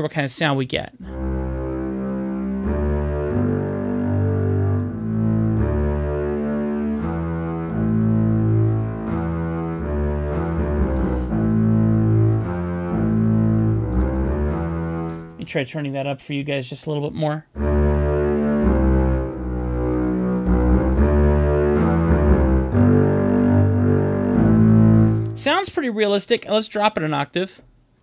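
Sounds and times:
bowed low bass string notes: 0:01.0 - 0:15.5, 0:17.6 - 0:25.7.

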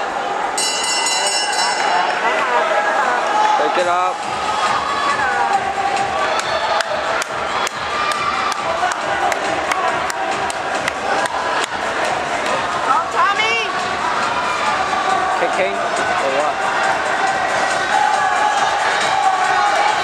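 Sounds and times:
crowd din: 0:00.0 - 0:20.0
spectators cheering and shouting: 0:00.0 - 0:20.0.

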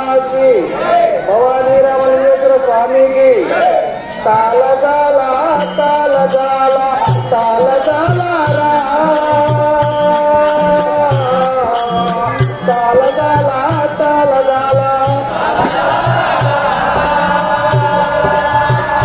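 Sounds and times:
person singing long held notes: 0:03.7 - 0:19.0
drum beating: 0:05.5 - 0:19.0
hand cymbals clinking: 0:05.5 - 0:19.0.

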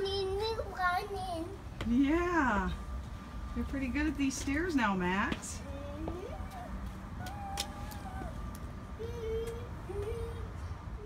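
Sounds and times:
toddler making gliding sounds: 0:05.7 - 0:08.4.

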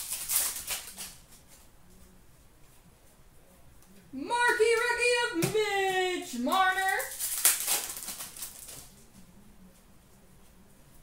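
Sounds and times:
trading cards shuffling: 0:00.0 - 0:01.7, 0:05.8 - 0:09.0.

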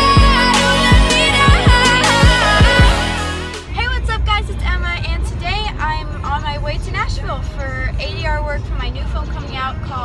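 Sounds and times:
car rumbling on the road: 0:03.6 - 0:10.0.

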